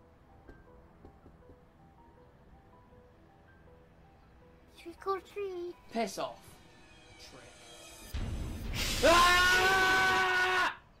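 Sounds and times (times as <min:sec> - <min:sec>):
loud held scream: 0:08.8 - 0:11.0.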